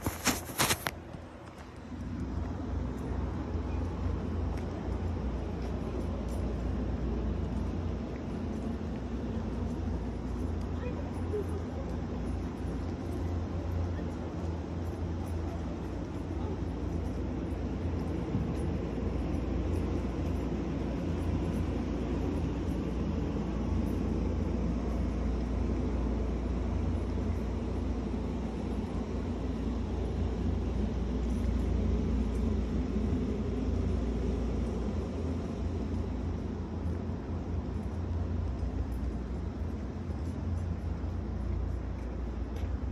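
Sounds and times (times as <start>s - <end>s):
outdoor background rumble: 0.0s - 42.9s.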